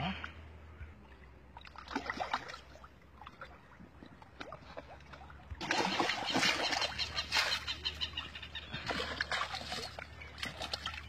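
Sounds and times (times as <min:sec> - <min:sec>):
water splashing from a tub: 0:01.5 - 0:08.0, 0:08.6 - 0:11.0.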